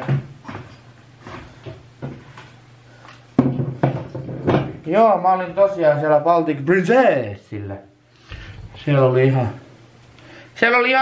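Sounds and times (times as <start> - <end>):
groceries knocking and clicking: 0.0 - 2.5, 3.4 - 4.8.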